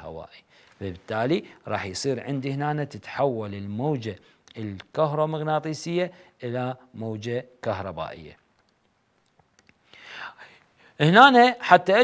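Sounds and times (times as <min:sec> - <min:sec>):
faint clicks: 0:08.4 - 0:09.8.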